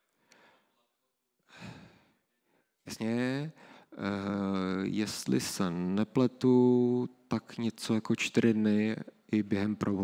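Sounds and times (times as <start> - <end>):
man breathing into microphone: 1.5 - 2.2.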